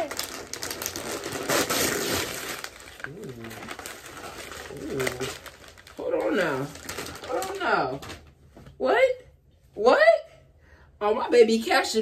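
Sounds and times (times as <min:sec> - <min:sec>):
gift wrapping crinkling: 0:00.0 - 0:08.5.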